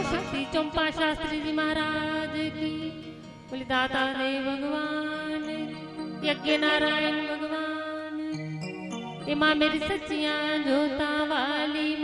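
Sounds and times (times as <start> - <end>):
woman singing into microphone: 0.0 - 8.4, 9.3 - 12.0.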